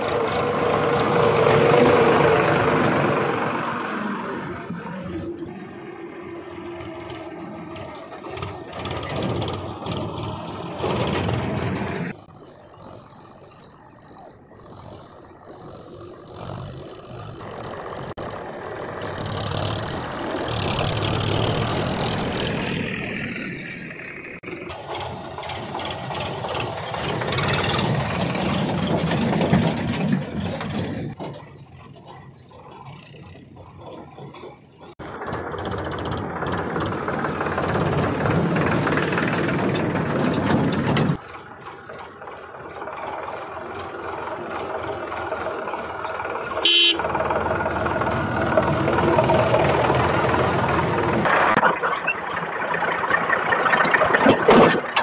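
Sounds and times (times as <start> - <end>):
tractor diesel engine: 0.0 - 55.0.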